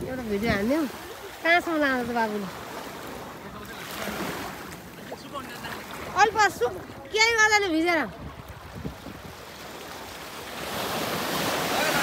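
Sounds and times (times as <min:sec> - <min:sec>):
ocean surf on a beach: 0:00.0 - 0:12.0.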